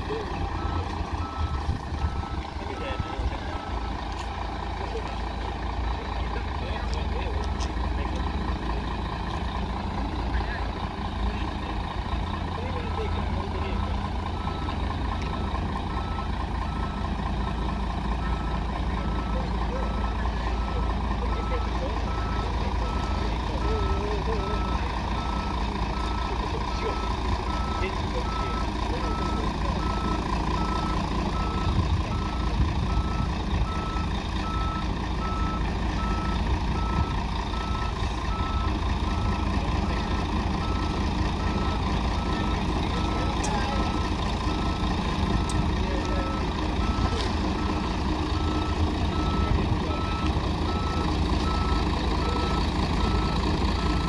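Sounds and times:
bus diesel engine running: 0:00.0 - 0:54.0
reversing alarm beeping: 0:00.1 - 0:04.0, 0:18.2 - 0:54.0.

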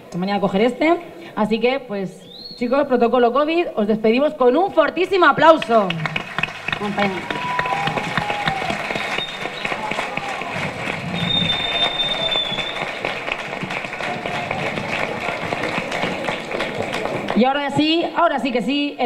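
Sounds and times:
audience applauding: 0:05.4 - 0:17.8
crowd voices: 0:06.5 - 0:17.8.

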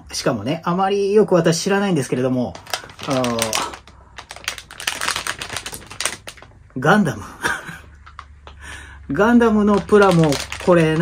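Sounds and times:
plastic packaging crinkling: 0:02.0 - 0:06.8, 0:09.2 - 0:11.0.

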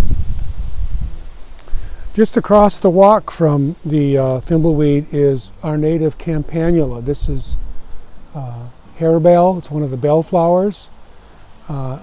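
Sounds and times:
wind noise on microphone: 0:00.0 - 0:02.7, 0:04.3 - 0:08.8.

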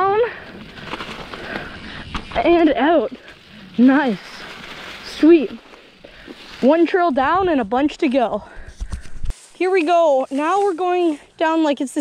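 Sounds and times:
faint rattles: 0:00.0 - 0:06.7
mountain bike rolling on dirt trail: 0:00.0 - 0:08.6, 0:09.7 - 0:12.0.

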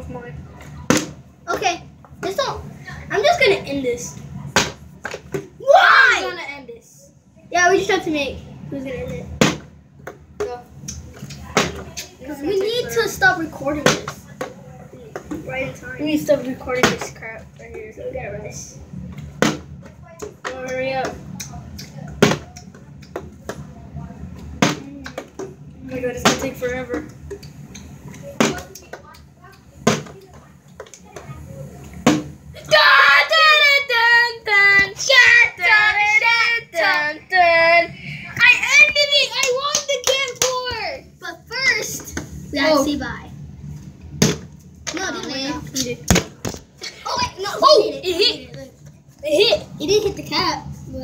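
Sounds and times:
child speaking: 0:01.5 - 0:04.4, 0:05.6 - 0:09.3, 0:11.4 - 0:18.8, 0:32.6 - 0:43.3, 0:44.9 - 0:46.1, 0:46.8 - 0:51.0.

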